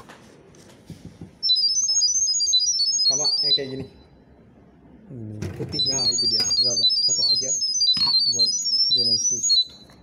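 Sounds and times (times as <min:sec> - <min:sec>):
high-pitched beeps hopping pitches: 0:01.4 - 0:04.0, 0:05.7 - 0:09.8.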